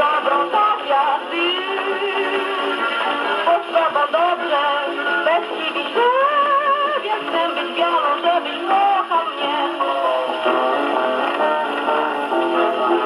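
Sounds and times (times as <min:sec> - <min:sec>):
dance orchestra on gramophone record: 0:00.0 - 0:13.0.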